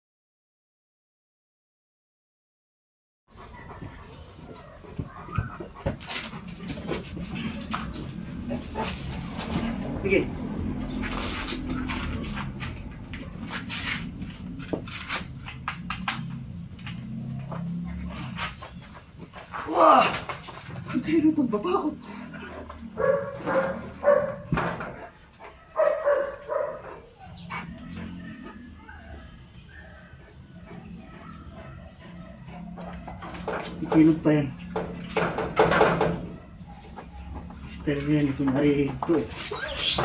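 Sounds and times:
sharp clicks and knocks: 14.6s - 17.6s
dog whining: 25.5s - 33.4s, 39.5s - 40.0s.

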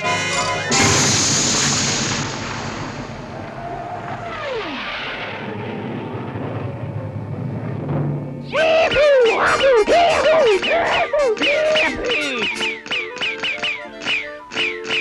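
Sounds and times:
long rushing noise: 0.7s - 9.3s
cartoon cannon blast: 0.7s - 12.0s.

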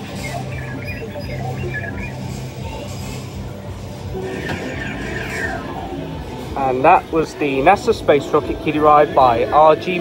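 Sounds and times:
falling electronic tones: 0.0s - 2.7s, 4.1s - 6.2s
electronic music from speaker: 0.0s - 3.3s.

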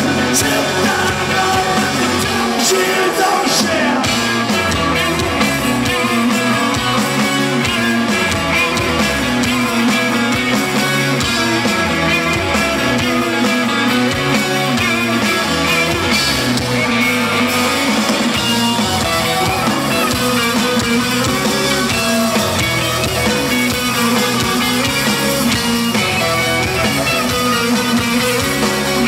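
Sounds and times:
drum kit beat: 0.0s - 29.0s
guitar: 0.0s - 29.0s.

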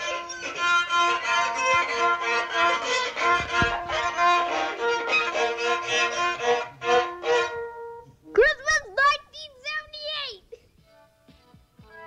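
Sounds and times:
violin short bowed notes: 0.0s - 8.2s.

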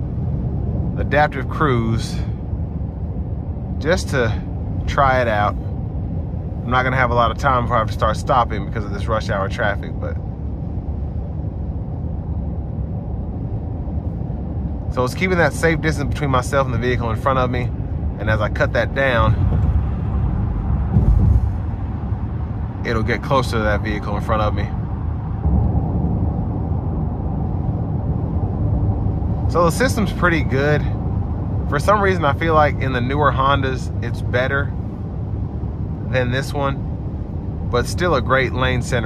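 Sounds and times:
tyre road and engine drone: 0.0s - 39.0s.

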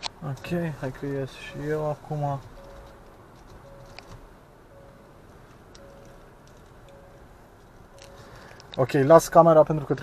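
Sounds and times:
faint warning chime beeps: 1.2s - 8.6s.

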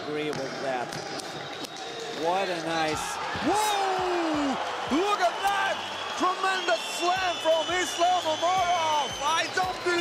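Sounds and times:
man commentating excitedly: 2.4s - 10.0s.

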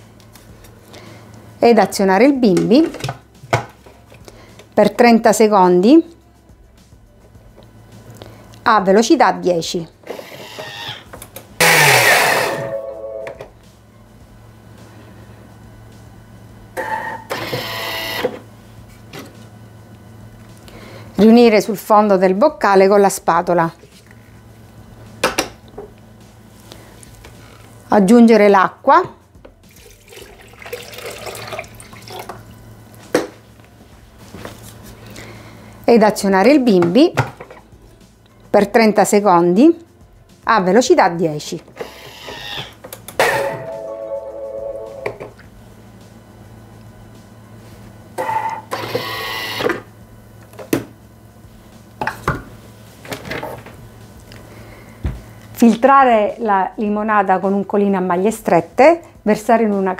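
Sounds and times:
kitchen blender running: 11.6s - 12.7s.

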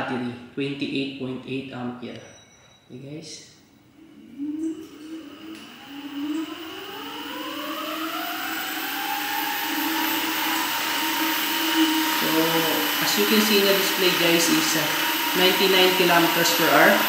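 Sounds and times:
electric motor whine rising: 3.9s - 17.0s
spinning wheel rushing noise: 5.2s - 17.0s.

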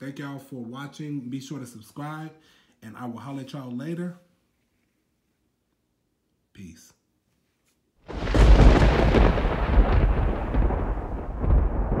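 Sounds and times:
thunder rumbling: 8.1s - 12.0s.

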